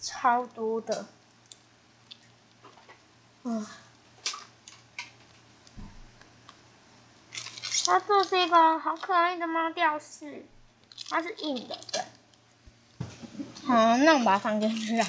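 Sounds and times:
plastic wrapper crinkling: 7.2s - 9.1s, 10.7s - 12.5s.

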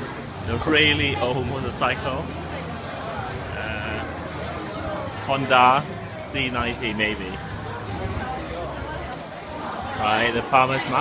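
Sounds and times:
indistinct background voices: 0.0s - 11.0s.

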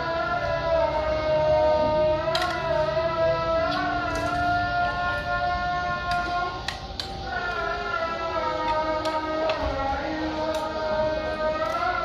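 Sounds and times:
long held tone from loudspeaker: 0.0s - 12.0s.

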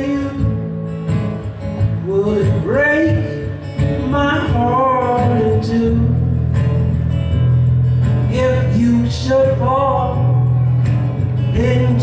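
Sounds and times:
acoustic guitar playing: 0.0s - 12.0s
person singing: 8.2s - 10.7s, 11.4s - 12.0s.

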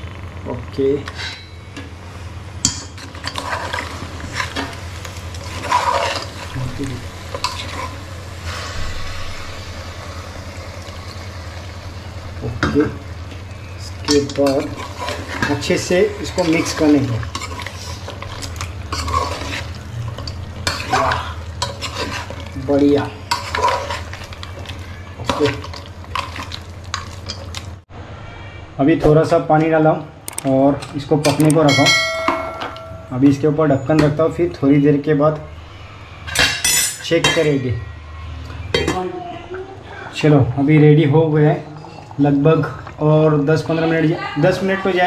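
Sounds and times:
metal spoon scraping a pan: 1.0s - 1.7s, 2.6s - 9.4s, 14.0s - 27.6s.

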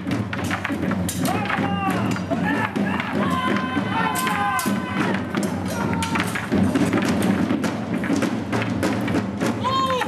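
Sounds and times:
wooden poles knocking together: 0.0s - 10.0s
men shouting: 1.2s - 6.5s.

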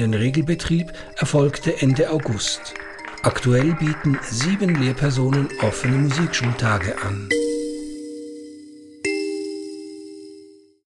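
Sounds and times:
bell-like chime: 1.0s - 10.8s.

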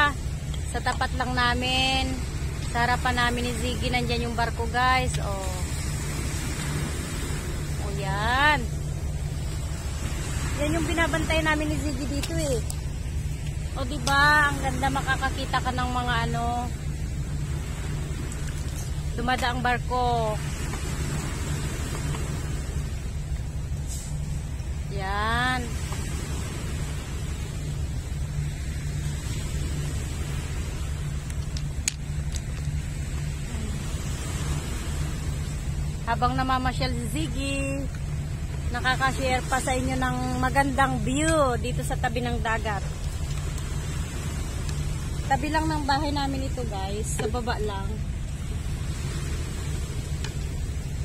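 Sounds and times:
hiss of wind and water: 0.0s - 51.0s
waves breaking on pebbles: 5.4s - 7.8s, 19.9s - 23.2s.

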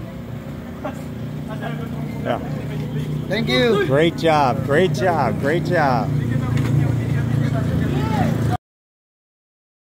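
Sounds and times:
low motor hum: 0.0s - 8.6s
people talking: 0.8s - 8.6s.

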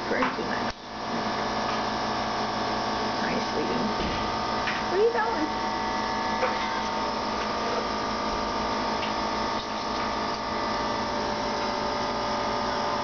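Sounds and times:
steady machine hum: 0.0s - 13.0s.

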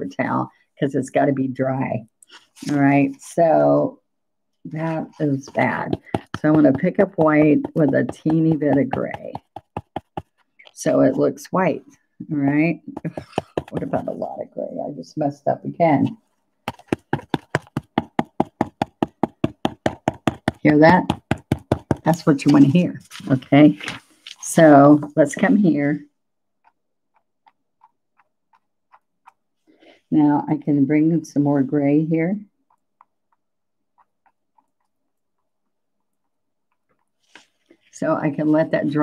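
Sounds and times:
brush tapping paint: 4.7s - 14.5s, 15.8s - 25.9s, 26.5s - 30.0s, 32.5s - 39.0s
brush tapping on palette: 4.8s - 11.2s, 12.8s - 14.3s, 16.7s - 22.8s.

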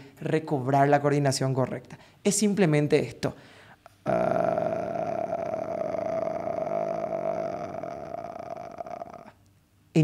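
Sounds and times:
man's creaky vocal fry: 3.8s - 9.5s.

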